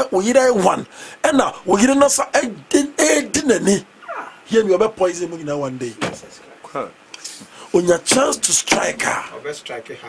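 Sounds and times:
man talking animatedly: 0.0 - 3.9, 7.7 - 10.0.

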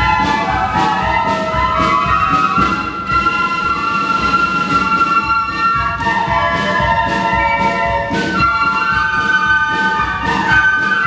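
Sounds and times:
flutes holding a chord: 0.0 - 11.0
regular drum beat: 0.0 - 11.0.

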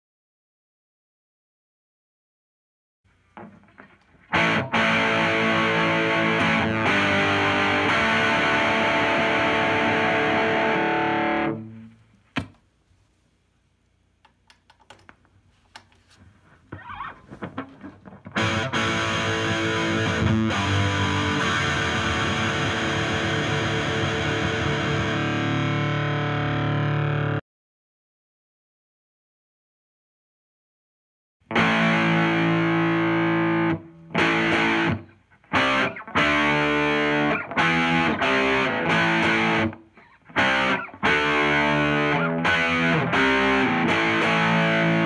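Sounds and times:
distorted electric guitar chords: 3.4 - 12.0, 16.7 - 27.4, 31.5 - 45.0
cable clicks and pops: 14.2 - 16.1.

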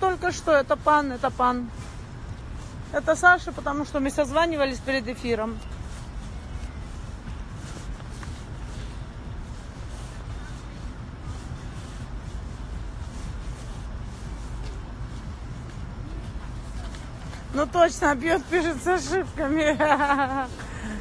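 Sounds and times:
microphone handling rustle: 5.2 - 17.6.

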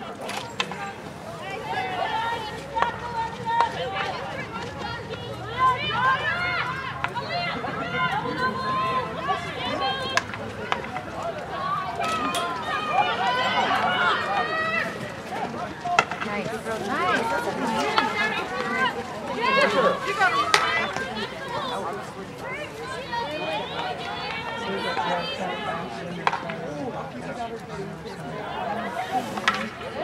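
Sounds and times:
distant players shouting: 0.3 - 27.0
hockey sticks striking ball: 15.9 - 16.3, 29.4 - 29.8.

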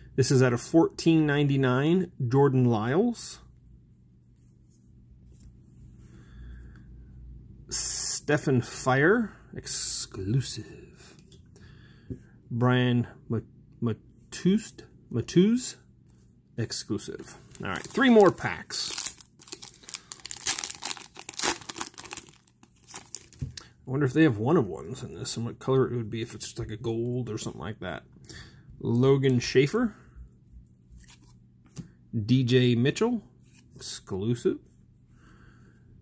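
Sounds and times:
low room hum: 0.0 - 36.0
foil wrapper crinkling and tearing: 17.5 - 23.5.

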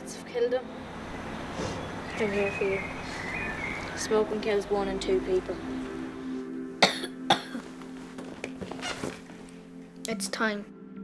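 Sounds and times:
background music: 0.0 - 11.0
boy coughing: 6.8 - 7.7.

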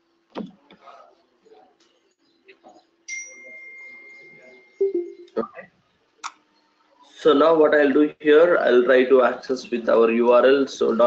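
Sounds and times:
high chime ringing: 3.1 - 5.4.

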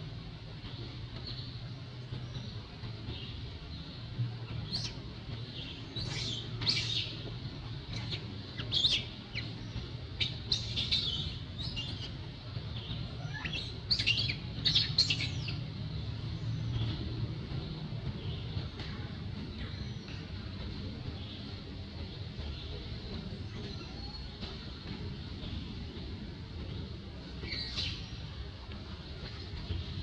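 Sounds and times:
steady low hum: 0.0 - 30.0
birds chirping: 0.4 - 30.0.

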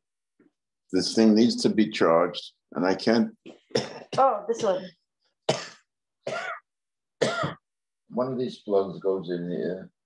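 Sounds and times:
man coughing: 3.7 - 4.7, 5.5 - 7.7.

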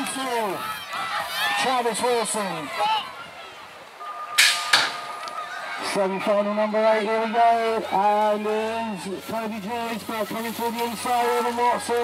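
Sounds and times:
start gate clattering hits: 4.4 - 5.2.

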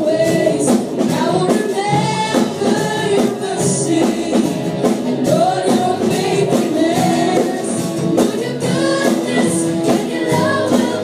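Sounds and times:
bass guitar: 0.0 - 11.0
drum kit beat: 0.0 - 11.0
singers singing together: 0.0 - 11.0.

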